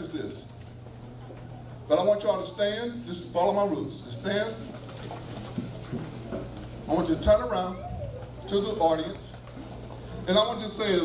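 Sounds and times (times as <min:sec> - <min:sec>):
steady low hum: 0:00.0 - 0:11.0
faint murmuring voices: 0:00.4 - 0:02.2, 0:04.0 - 0:11.0
shuffling of chairs and feet: 0:04.2 - 0:11.0.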